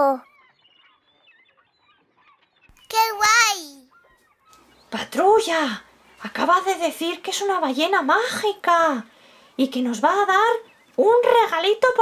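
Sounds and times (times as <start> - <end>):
high-pitched voice exclaiming: 2.9 - 3.9.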